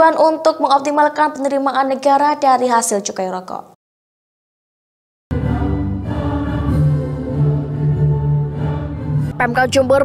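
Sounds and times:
crowd singing together: 5.3s - 9.4s
musical accompaniment: 5.3s - 10.0s.

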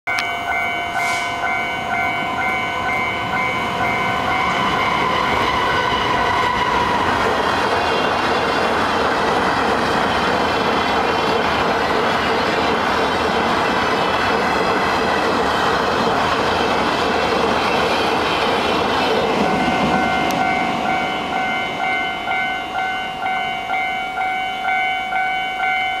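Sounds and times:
level crossing warning bell: 0.1s - 6.4s, 18.4s - 26.0s
freight train rolling: 0.1s - 26.0s.

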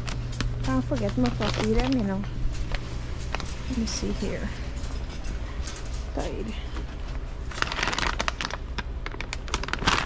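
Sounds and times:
plastic pouch crinkling and clicking: 0.0s - 3.7s, 7.4s - 10.0s.

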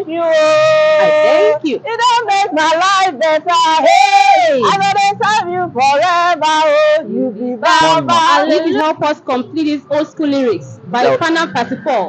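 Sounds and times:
woman singing worship song: 0.0s - 10.1s.

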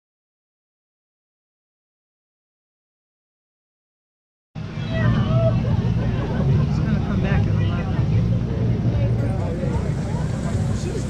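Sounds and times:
people talking: 4.6s - 11.0s
portable generator droning: 4.6s - 11.0s.

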